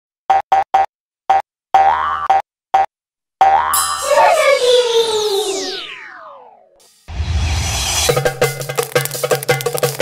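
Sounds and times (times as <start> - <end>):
cartoon boing notes: 1.8 - 4.0
intro music: 3.8 - 9.2.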